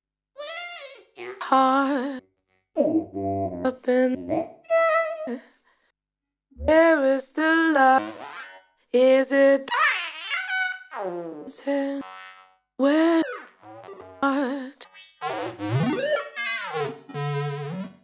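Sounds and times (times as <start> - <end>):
robotic vocoder singing: 2.8 - 5.4, 6.6 - 7.2, 7.8 - 8.5, 12.8 - 17.7.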